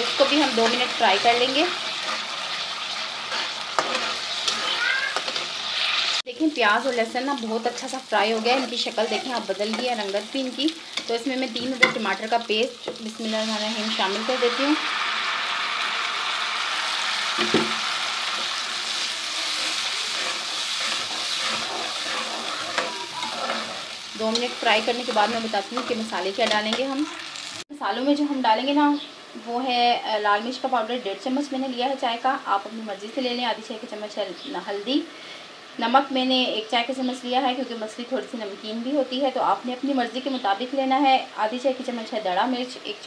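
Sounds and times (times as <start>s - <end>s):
onion sizzling in ghee: 0.0s - 43.0s
knock on pan: 17.4s - 17.8s.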